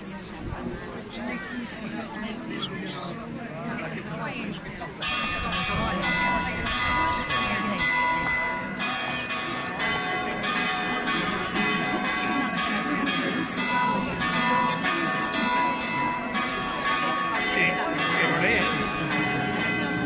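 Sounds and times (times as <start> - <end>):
crowd chatter: 0.0 - 20.0
church bells pealing: 5.0 - 20.0.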